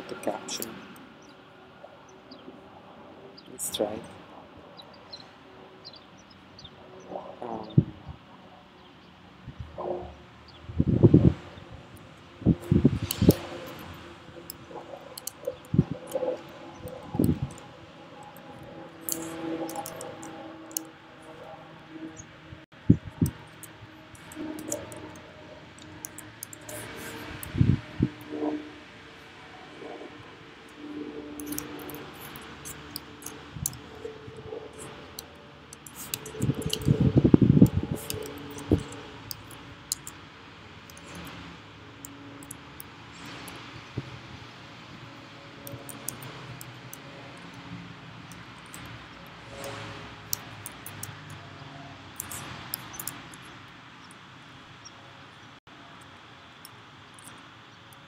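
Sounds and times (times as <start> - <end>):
laptop keyboard typing: 12.6 - 20.9, 23.2 - 28.2, 31.2 - 40.2, 52.2 - 53.2.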